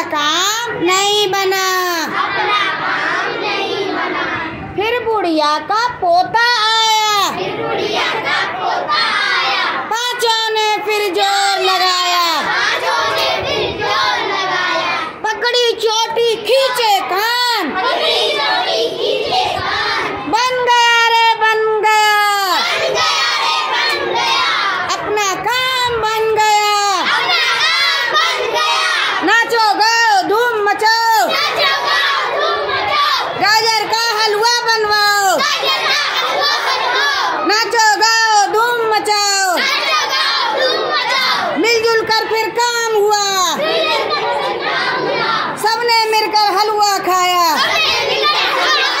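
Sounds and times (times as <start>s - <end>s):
children shouting and cheering: 0.0s - 49.0s.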